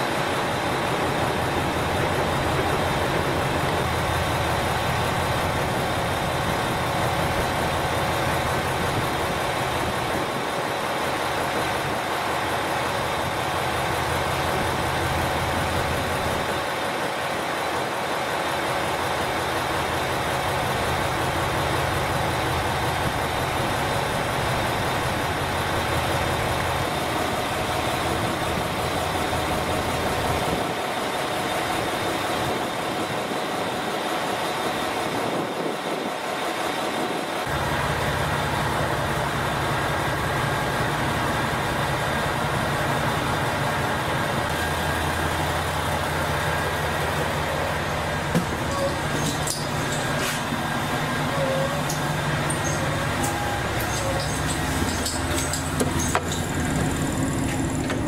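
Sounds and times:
constant high whine: 0:00.0 - 0:58.0
diesel train engine idling: 0:00.0 - 0:58.0.

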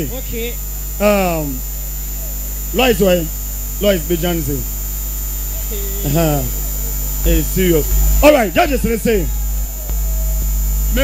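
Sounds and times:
person calling over microphone: 0:00.0 - 0:04.7, 0:05.5 - 0:11.0
electrical mains hum: 0:00.0 - 0:11.0.

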